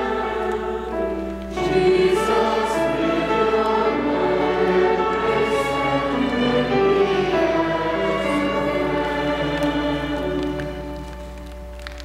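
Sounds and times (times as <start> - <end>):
violins and piano sacred music: 0.0 - 12.0.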